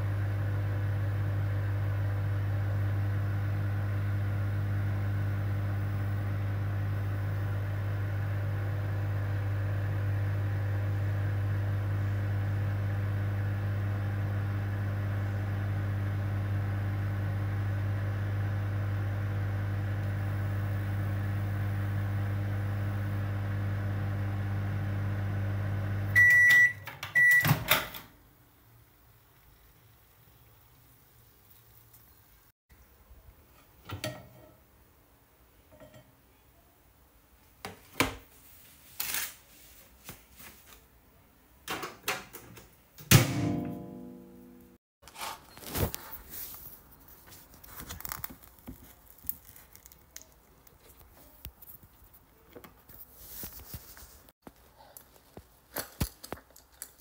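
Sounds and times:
microwave oven humming: 0.0s - 28.0s.

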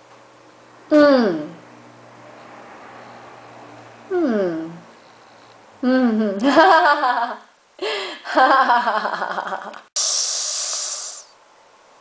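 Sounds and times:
woman hissing through teeth: 10.0s - 11.4s.

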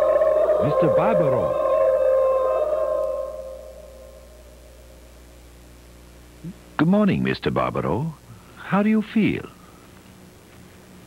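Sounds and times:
eerie held tone: 0.0s - 5.4s.

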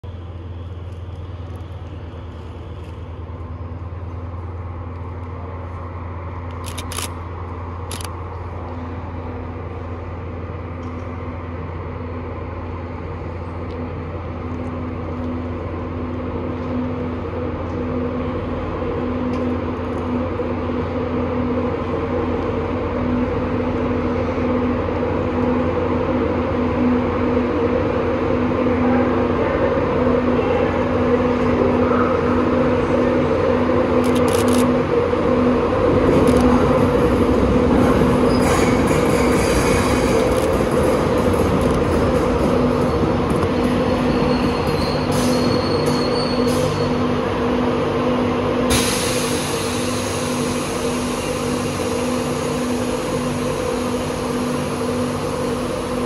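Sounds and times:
electric train humming: 0.0s - 56.0s.

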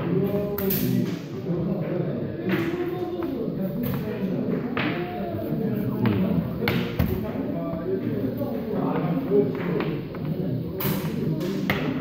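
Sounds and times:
background talk: 0.0s - 12.0s.

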